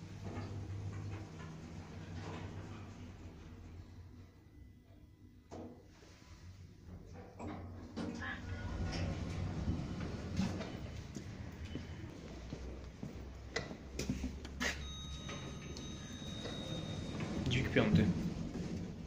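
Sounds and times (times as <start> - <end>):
lift doors sliding: 0.0 - 4.5, 5.6 - 19.0
footsteps: 9.1 - 19.0.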